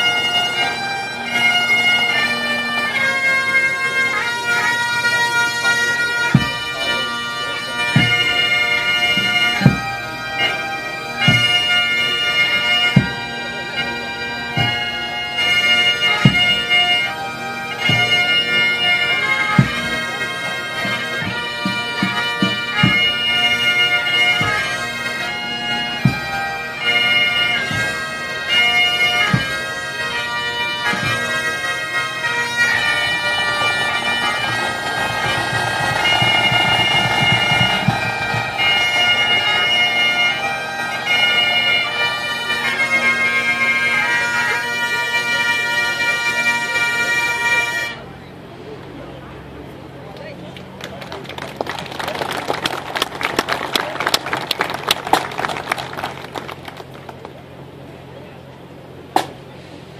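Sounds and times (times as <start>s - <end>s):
bagpipes playing a melody: 0.0s - 48.2s
bass drum strokes: 32.7s - 41.0s
drum roll: 33.2s - 40.3s.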